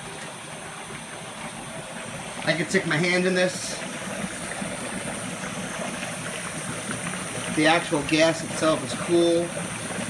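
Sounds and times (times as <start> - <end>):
dry ice bubbling in water: 0.0 - 10.0
kitchen tap running: 0.0 - 10.0.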